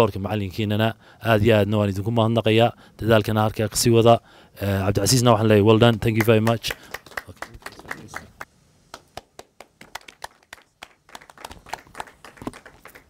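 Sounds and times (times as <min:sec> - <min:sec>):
audience clapping: 0:05.8 - 0:13.0.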